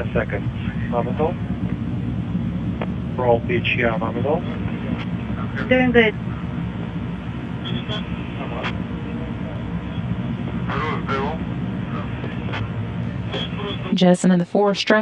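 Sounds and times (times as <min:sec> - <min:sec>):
faint clipped radio voices: 0:00.0 - 0:01.8, 0:03.2 - 0:15.0
radio rumble and hiss: 0:00.0 - 0:15.0.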